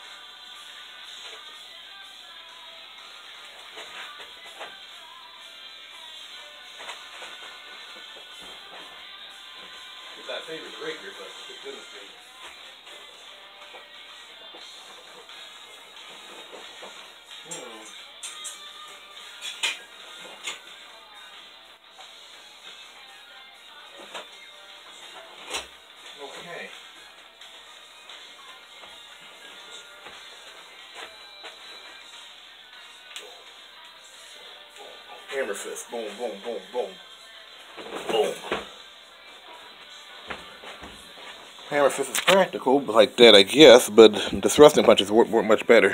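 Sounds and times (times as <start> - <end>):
faint television music and voices: 0.0 - 45.9.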